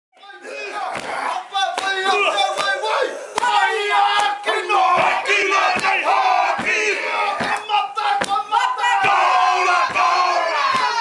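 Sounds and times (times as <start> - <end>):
men shouting chant in unison: 0.2 - 11.0
body slaps: 0.9 - 1.2, 4.9 - 6.8, 7.4 - 8.4, 9.8 - 11.0.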